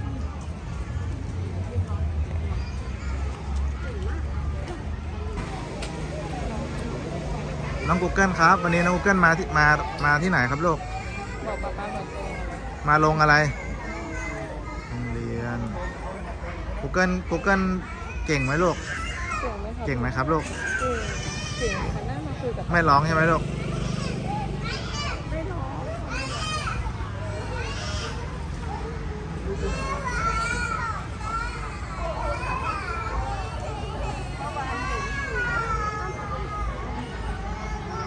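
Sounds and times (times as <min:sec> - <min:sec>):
children playing and calling: 0:00.0 - 0:38.0
steady low din: 0:05.4 - 0:08.2.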